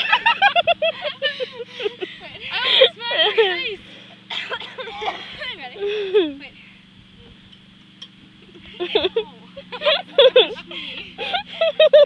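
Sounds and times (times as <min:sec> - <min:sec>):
girls laughing: 0:00.0 - 0:06.5, 0:08.4 - 0:12.0.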